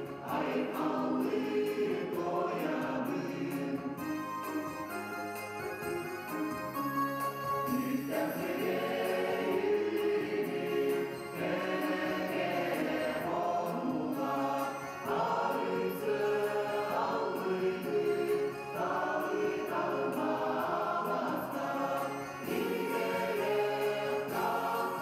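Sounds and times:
mixed choir singing: 0:00.0 - 0:04.3, 0:07.6 - 0:25.0.

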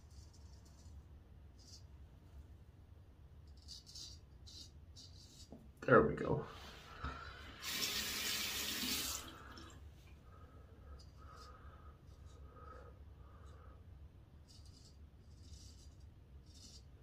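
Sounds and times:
bathroom tap running: 0:07.0 - 0:09.8
razor scraping stubble: 0:14.4 - 0:17.0.

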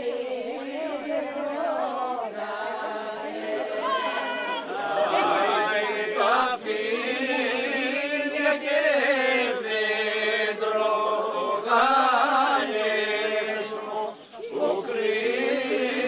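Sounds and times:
group singing unaccompanied: 0:00.0 - 0:16.0.

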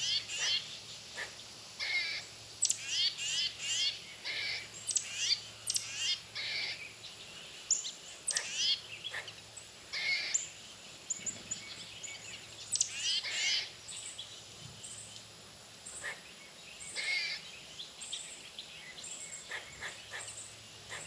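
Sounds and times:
birds singing and calling: 0:00.0 - 0:21.0.

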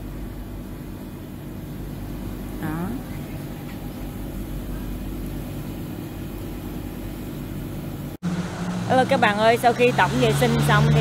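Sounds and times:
building machinery hum: 0:00.0 - 0:11.0
distant traffic: 0:00.0 - 0:11.0.

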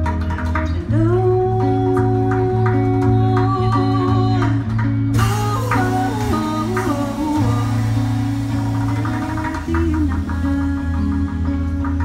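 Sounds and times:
acoustic guitar playing: 0:00.0 - 0:12.0
drums playing: 0:05.1 - 0:12.0.

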